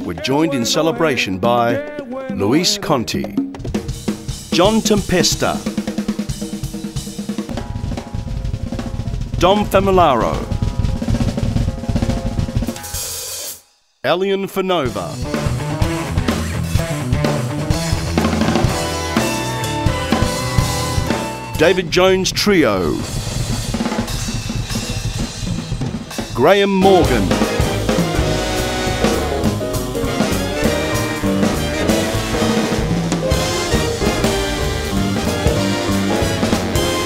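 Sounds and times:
band instruments: 0:00.0 - 0:13.5, 0:14.8 - 0:37.0
drum kit played fast: 0:01.8 - 0:13.7, 0:14.8 - 0:37.0
heavy bass drum: 0:03.5 - 0:13.1, 0:15.2 - 0:22.2, 0:22.9 - 0:37.0.

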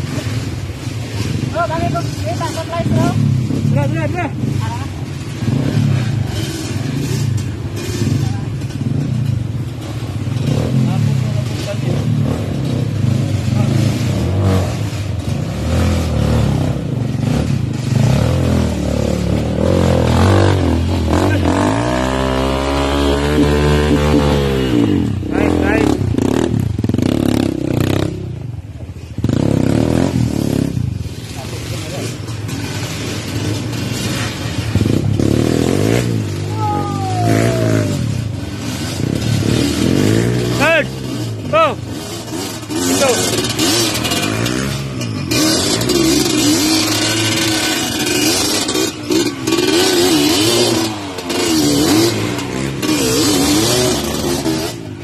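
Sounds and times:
dirt bike engine revving: 0:00.0 - 0:28.5, 0:29.2 - 0:55.0.

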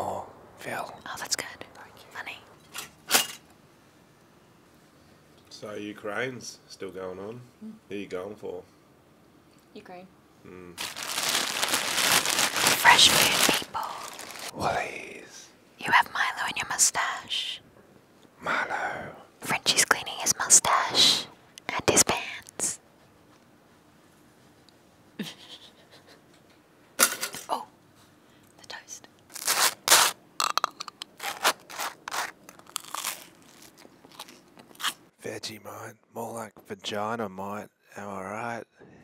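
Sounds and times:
close breathy whispering: 0:00.6 - 0:02.5, 0:12.8 - 0:17.6, 0:18.4 - 0:22.8.

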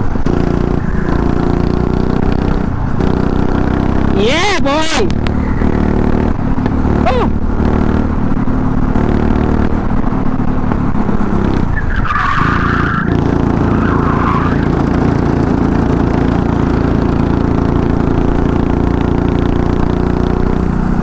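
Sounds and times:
go-kart engine running hard: 0:00.0 - 0:21.0
tyre squeal: 0:11.7 - 0:14.8.

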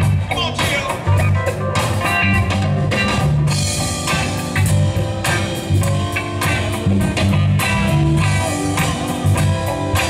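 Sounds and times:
live funk blues band: 0:00.0 - 0:10.0.

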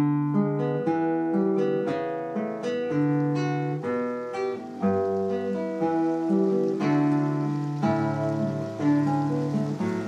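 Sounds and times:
acoustic guitar music: 0:00.0 - 0:10.0.

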